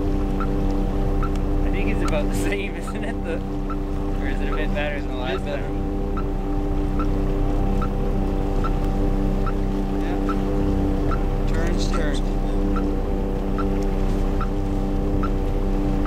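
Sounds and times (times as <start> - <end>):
boat engine idling: 0.0 - 16.0.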